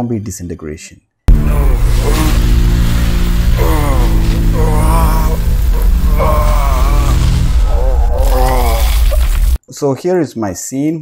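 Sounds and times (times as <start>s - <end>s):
deep steady drone: 1.3s - 9.6s
faint hiss: 1.3s - 9.6s
moaning voice-like tones: 1.3s - 9.6s.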